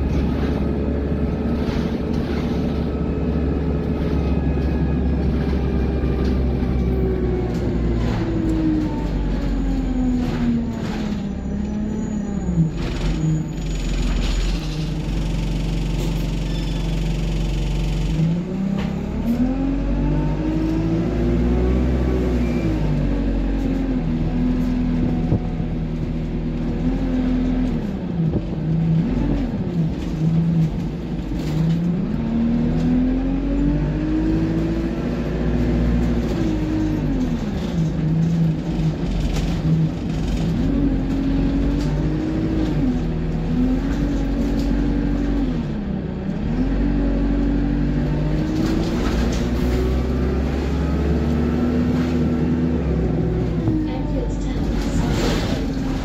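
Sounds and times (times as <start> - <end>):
bus diesel engine revving: 0.0 - 56.0.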